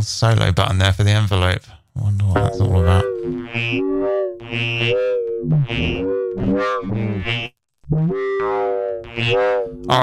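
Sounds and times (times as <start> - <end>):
pitched electronic drone: 2.4 - 10.0.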